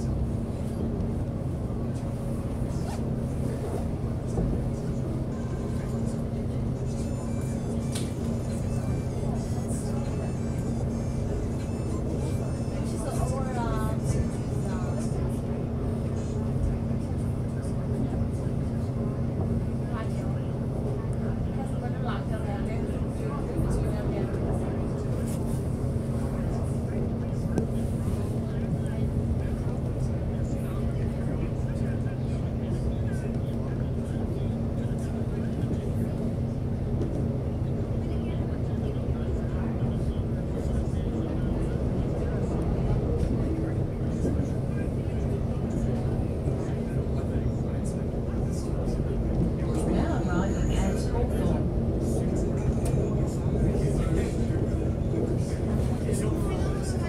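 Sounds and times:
electric train hum and rumble: 0.0s - 57.0s.

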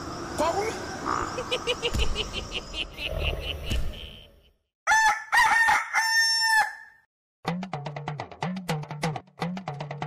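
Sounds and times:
rooster crowing: 4.9s - 7.1s.

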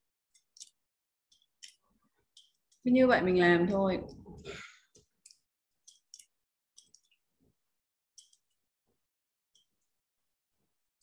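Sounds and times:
woman speaking: 2.9s - 4.3s.

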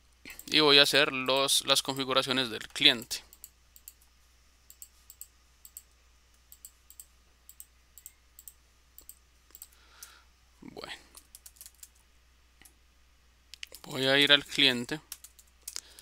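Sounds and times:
computer keyboard keystrokes: 15.1s - 15.8s.

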